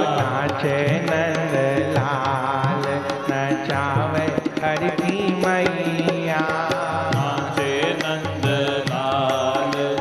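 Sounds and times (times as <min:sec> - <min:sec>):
devotional music with percussion: 0:00.0 - 0:10.0.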